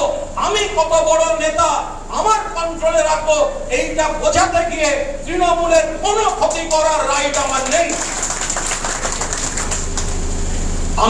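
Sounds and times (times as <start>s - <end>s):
steady low hum: 0.0s - 11.0s
audience clapping: 6.2s - 10.4s.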